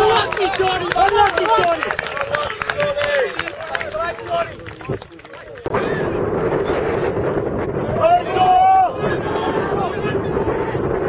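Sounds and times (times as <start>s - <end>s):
loud shout: 0.0s - 4.6s, 7.9s - 10.8s
wind buffeting microphone: 0.0s - 11.0s.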